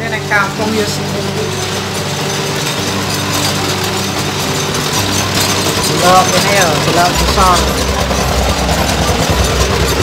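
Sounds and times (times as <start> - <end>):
motor-driven machine running: 0.0 - 10.0.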